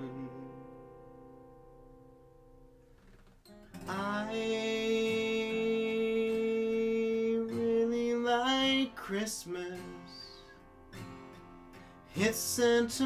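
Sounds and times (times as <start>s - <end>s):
acoustic guitar strummed: 0.0s - 13.0s.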